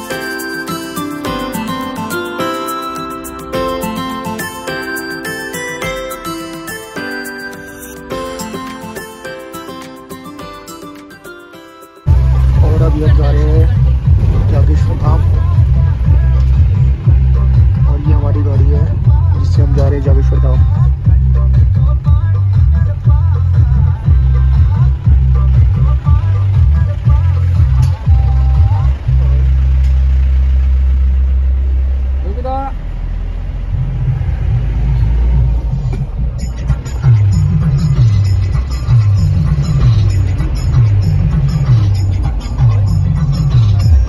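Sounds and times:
music playing: 0.0s - 31.7s, 33.7s - 44.0s
indistinct voices: 12.1s - 30.0s
low engine and road rumble: 12.1s - 44.0s.

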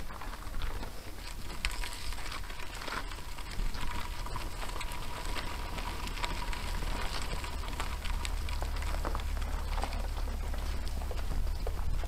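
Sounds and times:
gravel crunching under tyres: 0.0s - 12.0s
low wind rumble on microphone: 0.0s - 12.0s.

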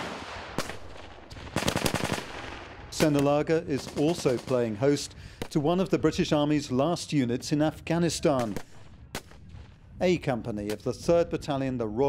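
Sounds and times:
gunshot crack: 0.0s - 3.4s, 8.4s - 9.8s
automatic gunfire burst: 1.5s - 2.4s.

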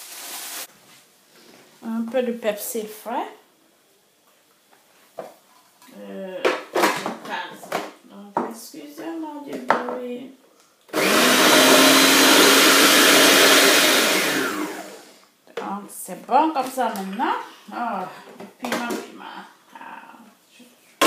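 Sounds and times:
food processor motor running: 10.9s - 15.1s.

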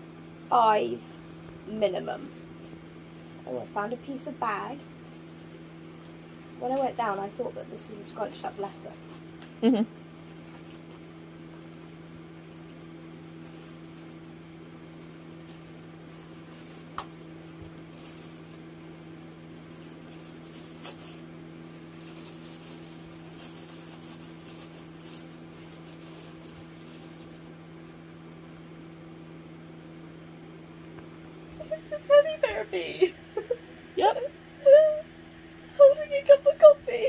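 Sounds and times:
low electrical hum: 0.0s - 37.0s
wrapper crinkling: 1.5s - 12.0s, 12.6s - 28.1s.

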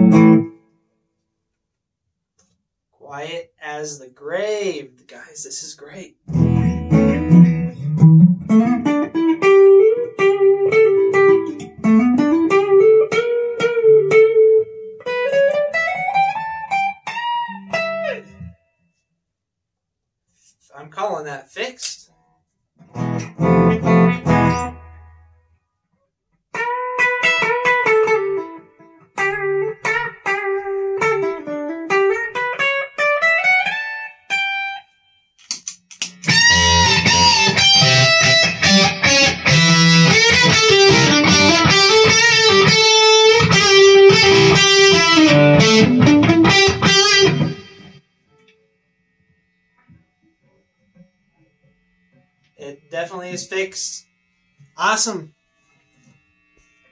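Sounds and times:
electric guitar playing: 0.0s - 0.7s, 6.2s - 18.6s, 22.8s - 25.4s, 26.5s - 34.9s, 36.1s - 56.9s.

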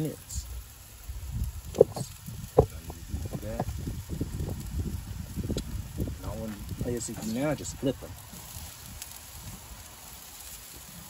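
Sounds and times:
muffled voices: 6.2s - 8.1s.

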